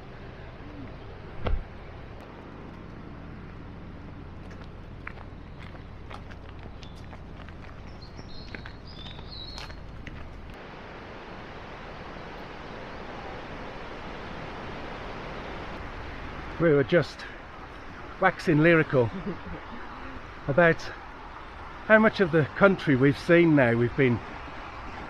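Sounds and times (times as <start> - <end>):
steady outdoor hiss: 0.0 - 25.0
footsteps on outdoor path: 2.2 - 10.6.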